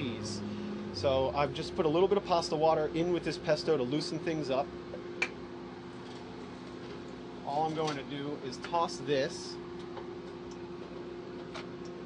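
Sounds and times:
kitchen equipment hum: 0:00.0 - 0:12.0.

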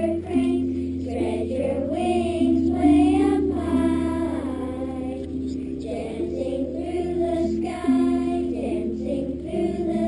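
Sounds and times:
children singing in unison: 0:00.0 - 0:10.0.

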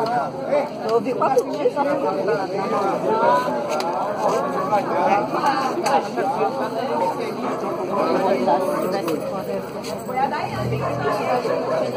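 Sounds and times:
people talking at once: 0:00.0 - 0:11.9.

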